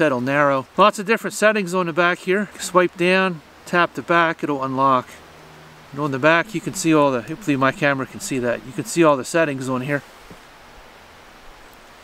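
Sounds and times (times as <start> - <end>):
light air over leaves: 1.8 - 12.0.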